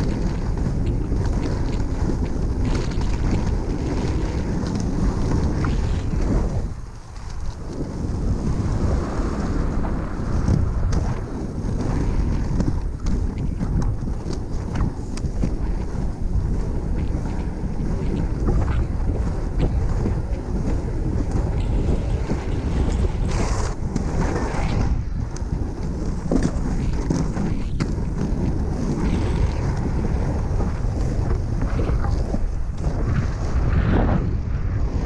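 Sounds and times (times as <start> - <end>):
skate wheels rumbling on tarmac: 0.0 - 35.0
wind buffeting microphone: 0.0 - 35.0.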